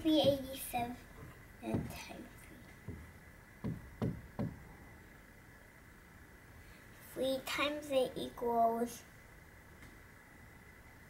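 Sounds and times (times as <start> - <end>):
marker knocking on whiteboard: 0.2 - 0.5, 1.7 - 2.1, 2.8 - 4.6.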